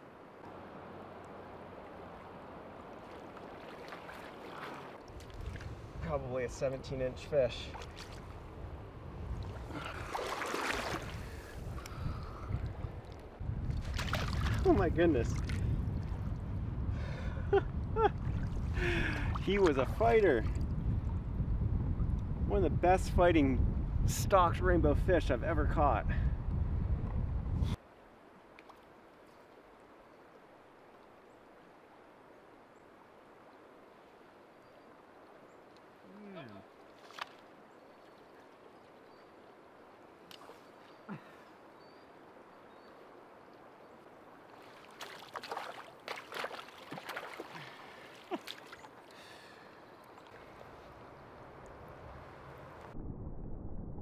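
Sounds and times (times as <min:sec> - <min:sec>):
creek water rushing and splashing: 0:00.0 - 0:16.3, 0:27.8 - 0:52.9
wind rumbling on microphone: 0:05.1 - 0:27.8, 0:50.6 - 0:54.0.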